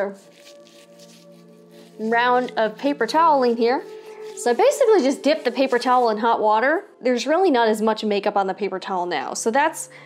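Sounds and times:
paper towel rubbing on face: 0.0 - 6.5
background music of held tones: 0.0 - 10.0.

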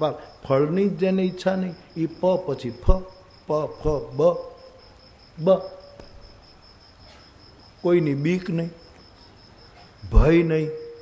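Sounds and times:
man speaking: 0.0 - 4.6, 5.4 - 5.8, 7.8 - 8.8, 10.0 - 10.9
insect chirping: 0.0 - 11.0.

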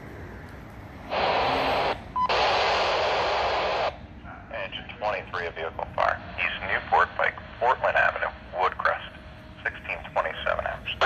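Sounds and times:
radio static hiss: 1.1 - 11.0
dispatcher speaking over radio: 4.4 - 11.0.

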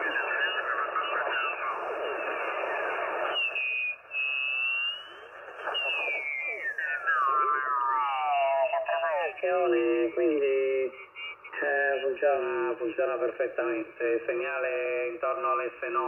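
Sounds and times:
radio carrier whistles: 0.0 - 10.2, 10.8 - 12.6
off-tune radio voices: 0.0 - 16.0
radio band noise: 0.0 - 16.0.

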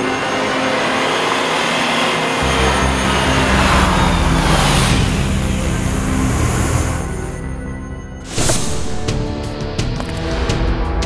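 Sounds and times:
suspense score: 0.0 - 11.0
deep rumble: 2.4 - 10.7
dramatic whoosh and rumble: 2.4 - 11.0.

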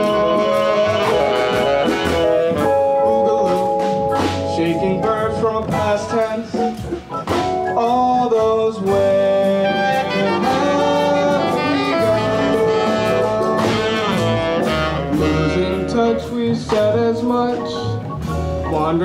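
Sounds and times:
jazz band playing: 0.0 - 19.0.

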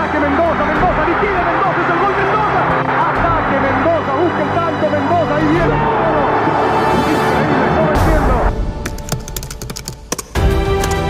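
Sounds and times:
stadium crowd voices: 0.0 - 8.5
music playing: 0.0 - 11.0.

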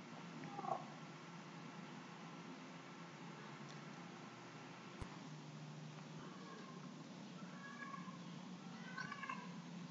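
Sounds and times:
room tone hiss and hum: 0.0 - 9.9
faint wavering animal call: 0.4 - 1.0, 6.2 - 9.6.

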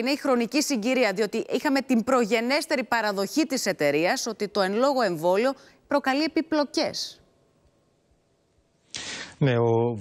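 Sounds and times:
woman talking: 0.0 - 7.2
short hiss: 8.9 - 9.4
man talking: 9.0 - 10.0.

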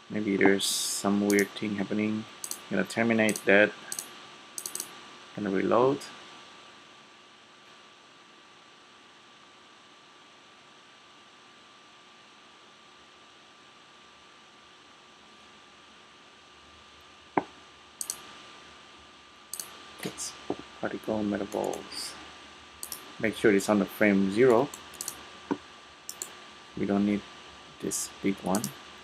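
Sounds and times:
faint steady whine: 0.0 - 29.0
low steady room hiss: 0.0 - 29.0
computer mouse clicks: 1.3 - 1.5, 2.4 - 2.7, 3.3 - 4.9, 18.0 - 18.2, 19.5 - 19.8, 21.5 - 21.8, 22.8 - 23.1, 24.7 - 25.2, 26.1 - 26.4, 28.5 - 28.8.

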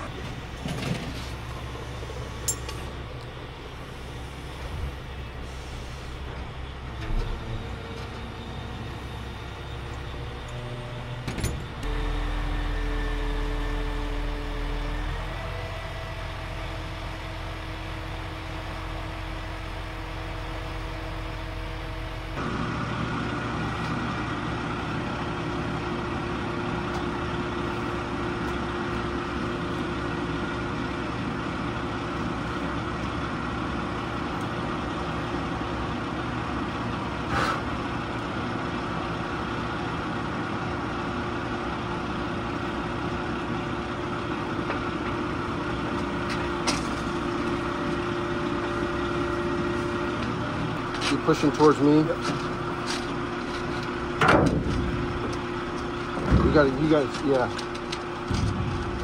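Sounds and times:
truck engine running: 0.0 - 59.0.

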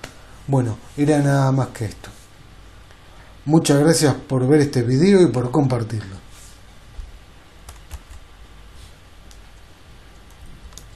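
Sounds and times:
steady low hum: 0.0 - 10.9.

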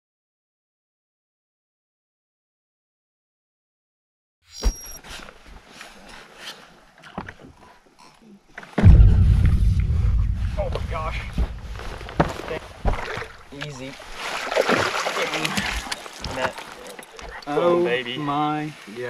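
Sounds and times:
low rumble: 8.8 - 13.5.

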